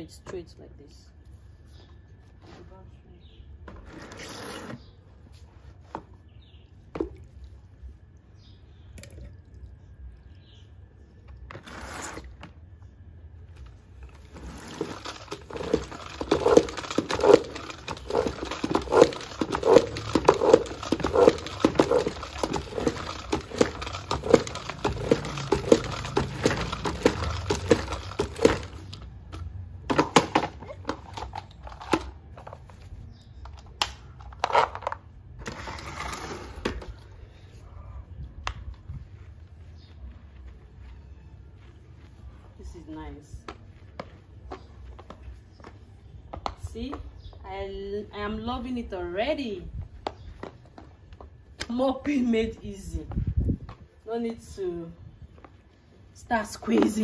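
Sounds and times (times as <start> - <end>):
spin mop whirling in bucket: 14.0 - 29.0.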